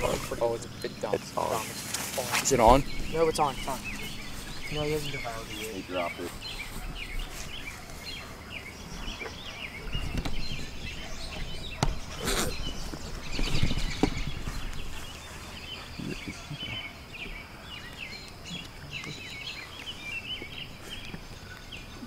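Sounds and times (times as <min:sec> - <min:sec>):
chorus of chirping calls: 0:00.0 - 0:22.0
thin high drone: 0:02.4 - 0:13.3.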